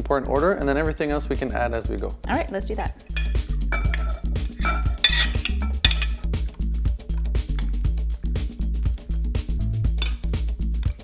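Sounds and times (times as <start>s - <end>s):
background music with steady beat: 0.0s - 11.0s
metal spoon scraping glass bowl: 3.0s - 6.4s.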